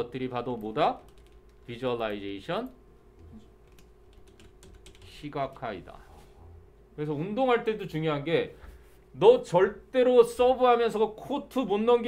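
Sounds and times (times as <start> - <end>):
computer keyboard typing: 0.5 - 2.2, 3.2 - 5.6.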